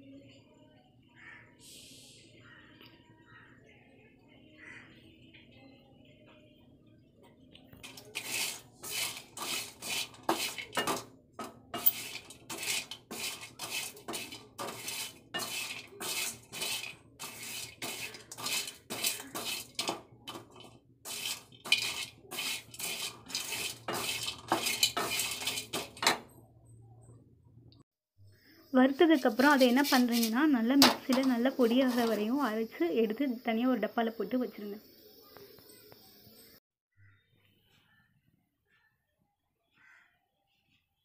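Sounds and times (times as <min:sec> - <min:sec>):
spatula scraping dry spices in pan: 0:07.8 - 0:26.2, 0:29.0 - 0:32.5.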